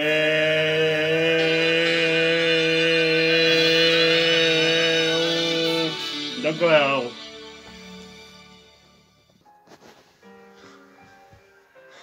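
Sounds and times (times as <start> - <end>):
man singing a long note: 0.0 - 7.2.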